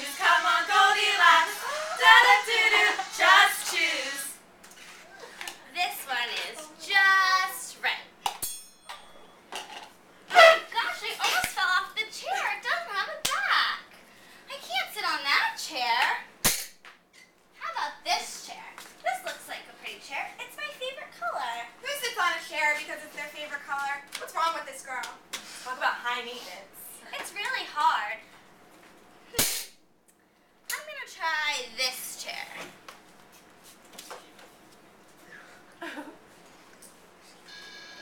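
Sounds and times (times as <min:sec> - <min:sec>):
woman's voice: 0:00.0 - 0:04.4, 0:05.6 - 0:08.1, 0:10.4 - 0:13.8, 0:17.6 - 0:28.2, 0:30.7 - 0:32.7
sharp smack: 0:29.4 - 0:29.8.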